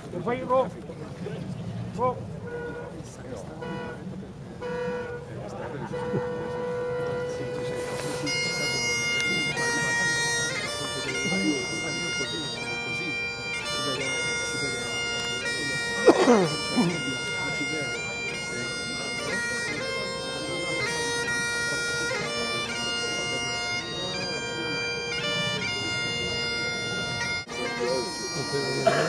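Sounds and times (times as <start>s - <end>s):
bagpipes playing: 2.0s - 29.0s.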